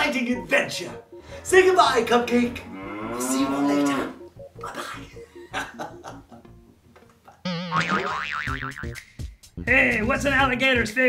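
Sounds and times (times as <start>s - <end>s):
background music: 0.0s - 11.0s
cartoon boing: 7.4s - 9.0s.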